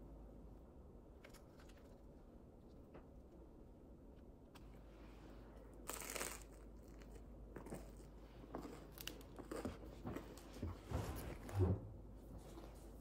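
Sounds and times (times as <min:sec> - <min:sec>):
crunch biting bread crust: 0:05.8 - 0:09.8.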